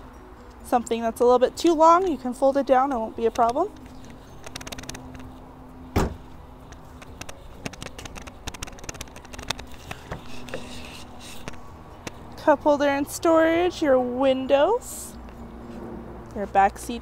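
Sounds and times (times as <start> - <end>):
car trunk lid thump: 5.9 - 6.3
car door opening: 5.9 - 6.4.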